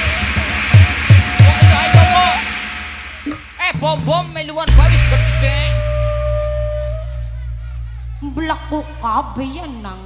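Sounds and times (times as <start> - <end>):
live band held note: 0.0 - 10.0
sound system deep hum: 3.2 - 10.0.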